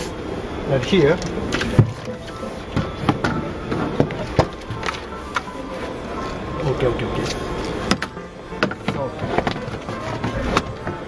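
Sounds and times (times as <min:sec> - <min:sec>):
background music: 0:01.9 - 0:11.0.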